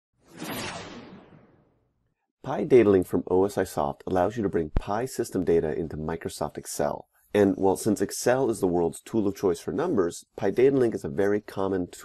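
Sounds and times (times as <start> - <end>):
whoosh sound effect: 0.2 - 1.9.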